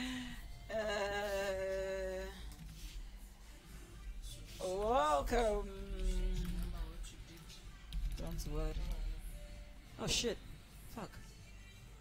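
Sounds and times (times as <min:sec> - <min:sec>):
woman humming: 0:00.0 - 0:02.5.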